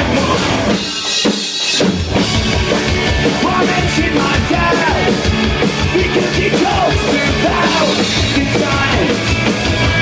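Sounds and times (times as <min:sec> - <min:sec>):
drum kit: 0:00.0 - 0:10.0
punk rock band playing: 0:00.0 - 0:10.0.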